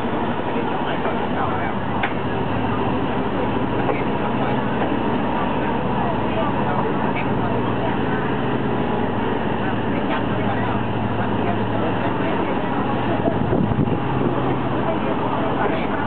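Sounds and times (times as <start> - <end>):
train wheels rumbling on rails: 0.0 - 16.0
rushing air: 12.9 - 15.4.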